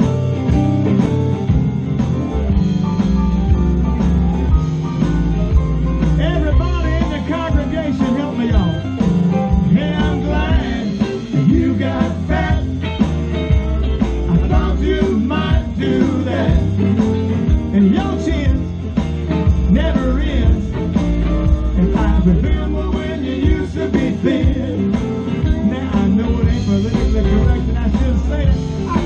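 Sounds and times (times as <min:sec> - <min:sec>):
drums: 0:00.0 - 0:29.0
electric bass: 0:00.0 - 0:29.0
electric guitars: 0:00.0 - 0:29.0
keyboard: 0:00.0 - 0:29.0.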